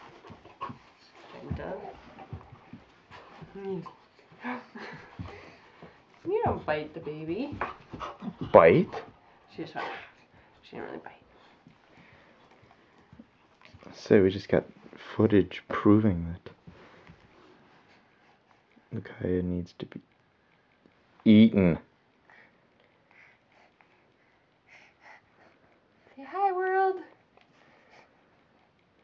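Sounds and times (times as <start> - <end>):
puppy panting: 0.0 - 14.2, 16.7 - 19.0, 22.2 - 29.0.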